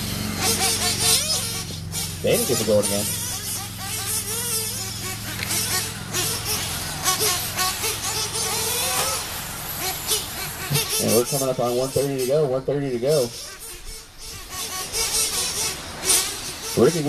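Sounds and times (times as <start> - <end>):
rc car motors revving: 0.0 - 17.0
steady low hum: 0.0 - 17.0
tires scratching on dirt: 0.0 - 17.0.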